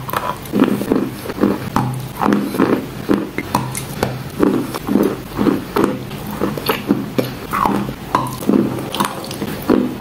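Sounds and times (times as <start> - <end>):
chalk crunching while chewed: 0.0 - 10.0
wet mouth sounds: 0.0 - 10.0.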